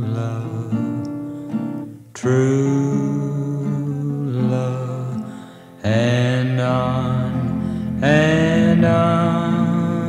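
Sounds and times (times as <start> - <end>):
love ballad music: 0.0 - 10.0.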